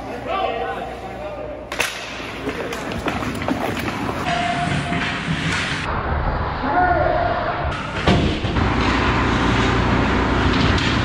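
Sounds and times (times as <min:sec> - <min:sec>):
voices in a rink: 0:00.0 - 0:05.8, 0:06.5 - 0:08.1
skates scraping ice: 0:00.0 - 0:05.9
hockey sticks clacking on puck: 0:01.7 - 0:05.9.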